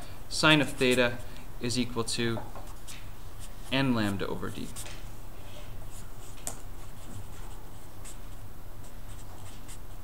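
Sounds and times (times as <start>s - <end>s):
marker writing on paper: 2.6s - 5.0s, 5.9s - 10.0s.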